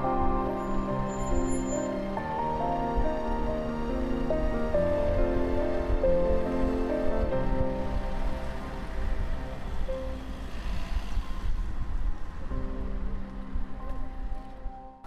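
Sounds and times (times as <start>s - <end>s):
music with sustained notes: 0.0s - 11.0s, 12.2s - 15.0s.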